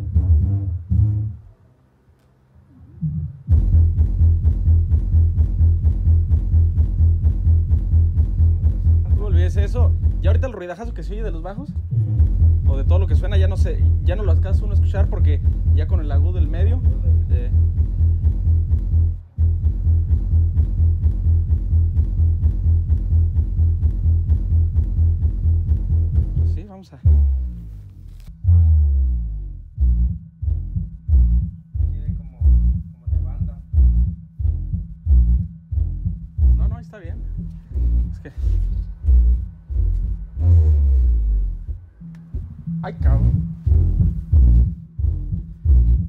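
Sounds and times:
loud bass-heavy dance music: 3.1s - 46.0s.

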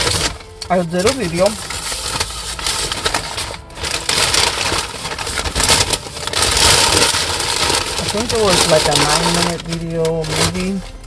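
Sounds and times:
paper wrapper rustling and crinkling: 0.0s - 11.0s.

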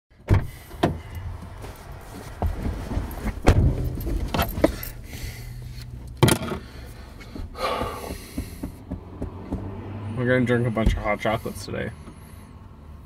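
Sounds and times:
car engine hum: 0.4s - 13.0s
sharp knocks and thumps: 2.2s - 4.9s, 6.2s - 10.0s
metal jingling: 3.1s - 5.2s.

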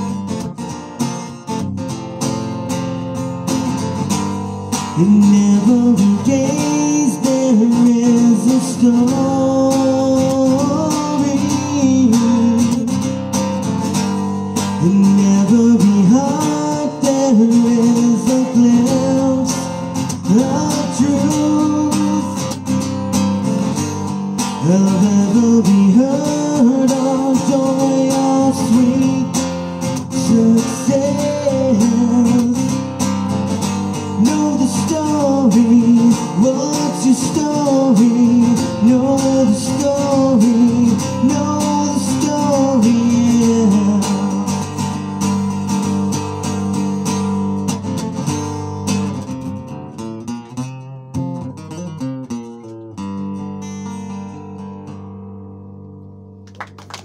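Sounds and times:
acoustic guitar strumming: 0.0s - 57.0s
man singing: 4.7s - 13.2s, 14.5s - 22.8s, 24.4s - 45.0s.

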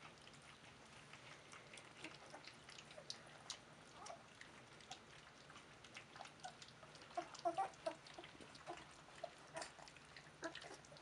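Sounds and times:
puppies eating wet smacks: 0.0s - 11.0s
puppies grunting: 0.0s - 11.0s.

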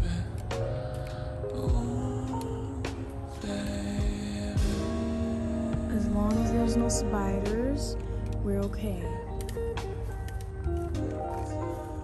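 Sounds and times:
music of long held notes: 0.0s - 12.0s.

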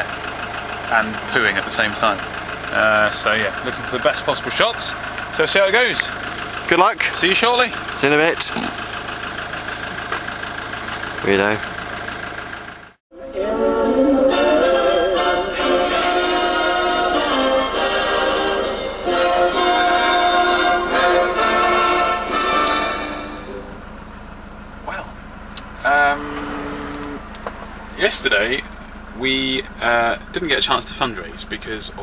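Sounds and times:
low background rumble: 0.0s - 32.0s
van engine idling: 0.0s - 32.0s
music with singing voice: 13.1s - 23.2s
man's hesitant umm: 24.9s - 27.4s.

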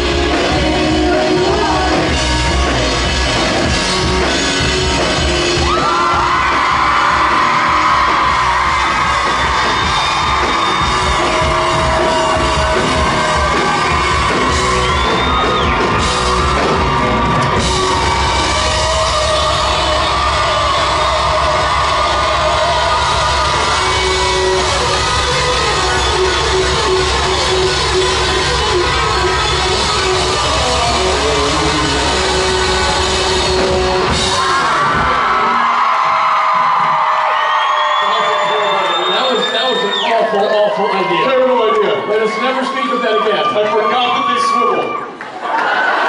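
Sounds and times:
audience yelling and whooping: 0.0s - 46.0s
live rock band in hall: 0.0s - 46.0s.

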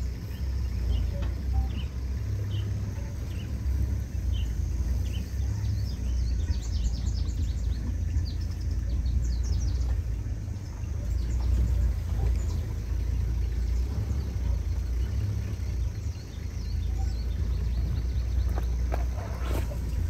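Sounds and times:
birds chirping: 0.0s - 20.0s
vehicle engine running low: 0.0s - 20.0s.

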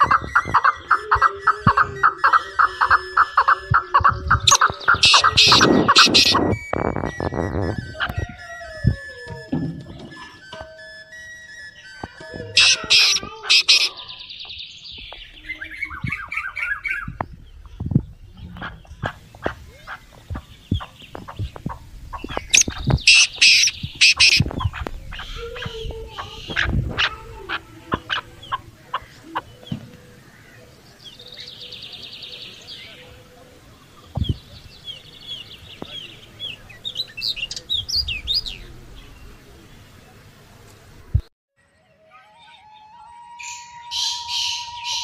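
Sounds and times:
high-pitched bursts: 0.0s - 14.3s, 21.4s - 29.4s
chickens and birds calling: 0.0s - 41.2s, 41.8s - 45.0s.

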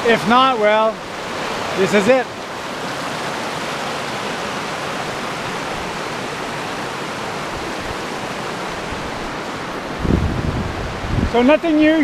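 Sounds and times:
river rapids rushing: 0.0s - 12.0s.

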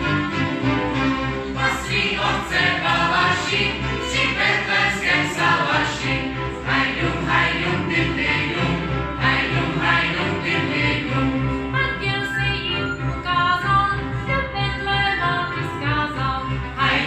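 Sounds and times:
mixed voices singing folk song: 1.5s - 11.7s.

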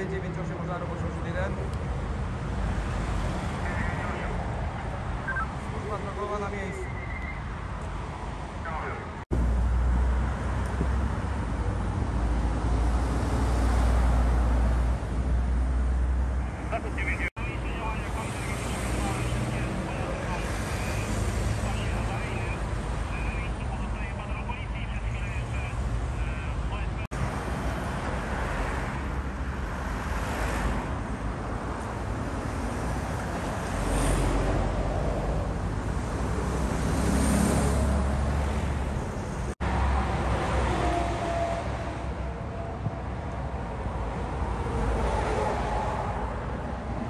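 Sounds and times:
motorway traffic rumble: 0.0s - 47.0s.

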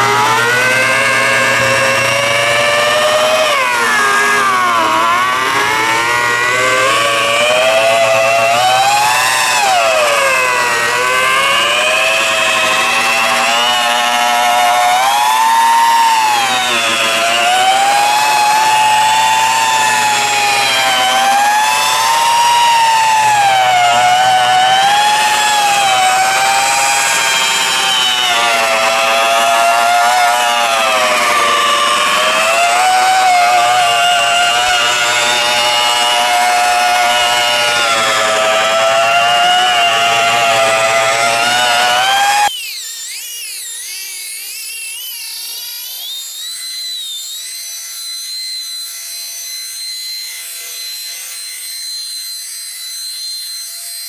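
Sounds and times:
electric polisher motor whine: 0.0s - 54.0s.

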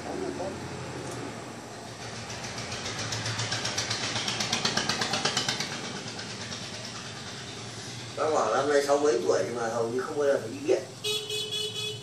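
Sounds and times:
small engine ticking and humming: 1.7s - 8.9s.

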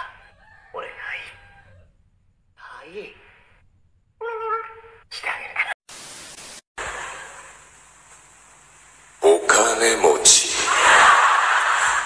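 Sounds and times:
tv static crackle and hiss: 5.2s - 12.0s.

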